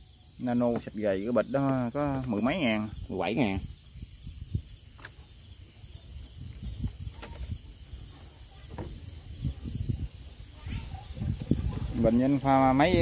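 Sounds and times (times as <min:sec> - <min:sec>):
night insects hissing: 0:00.0 - 0:13.0.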